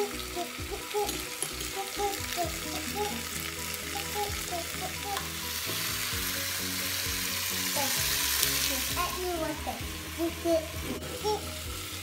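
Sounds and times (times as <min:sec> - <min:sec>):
chicken sizzling in oil: 0:00.0 - 0:12.0.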